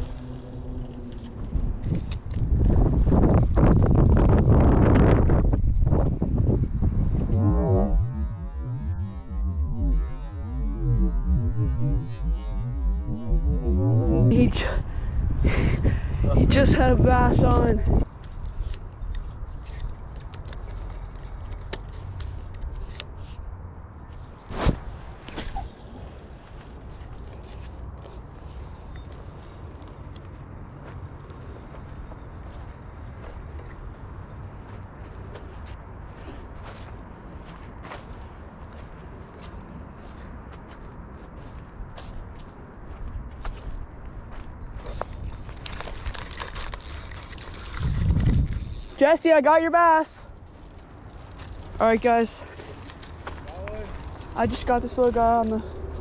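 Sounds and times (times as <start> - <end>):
wind rumble: 0.0 - 32.5, 41.7 - 49.0, 50.1 - 56.0
microphone handling noise: 1.7 - 15.8
reel clicks: 46.1 - 49.0.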